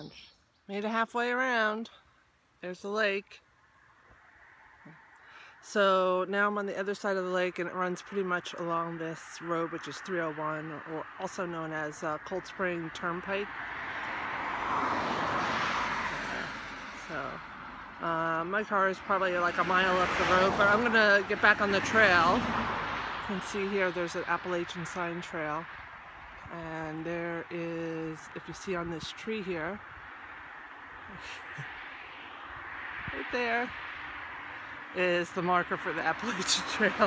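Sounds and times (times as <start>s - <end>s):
outdoor background hiss: 0.0s - 37.0s
car passing by: 6.8s - 37.0s.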